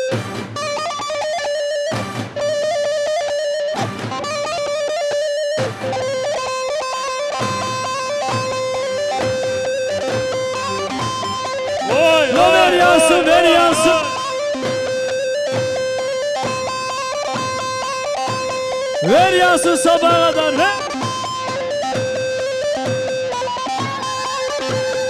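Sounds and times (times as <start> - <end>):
folk dance music: 11.1 - 14.6, 19.0 - 21.2
person shouting: 11.9 - 14.4, 19.0 - 20.8.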